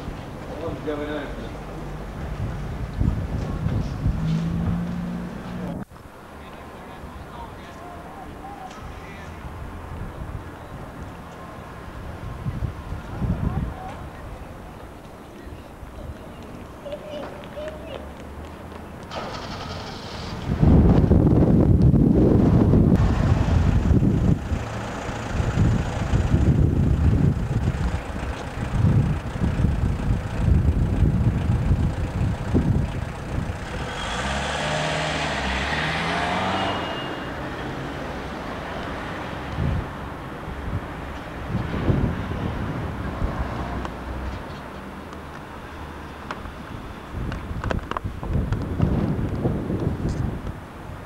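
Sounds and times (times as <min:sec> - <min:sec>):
vehicles passing: 0:00.0 - 0:51.0.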